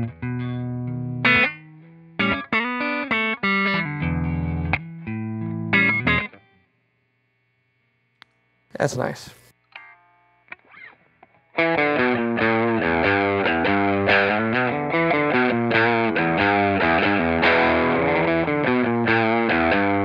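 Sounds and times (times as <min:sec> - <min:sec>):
electric guitar playing: 0:00.0 - 0:06.6, 0:09.7 - 0:20.0.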